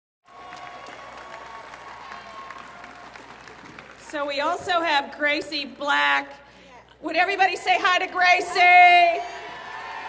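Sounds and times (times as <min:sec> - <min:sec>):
crowd applauding: 0:00.2 - 0:04.5, 0:09.2 - 0:10.0.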